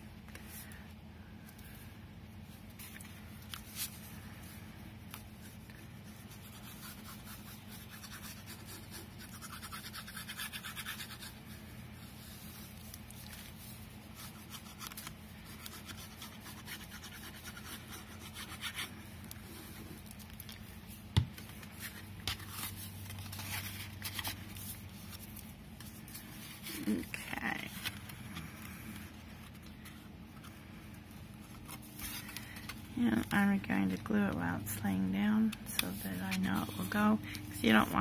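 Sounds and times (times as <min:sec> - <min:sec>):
steady low hum: 0:00.0 - 0:38.0
paper handling: 0:02.6 - 0:07.1, 0:12.1 - 0:34.0
glue nozzle scratching on paper: 0:06.2 - 0:11.4, 0:14.2 - 0:18.9.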